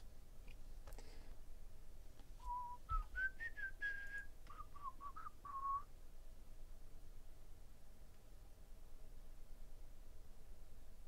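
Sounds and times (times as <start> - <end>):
person whistling a tune: 2.4 - 5.9.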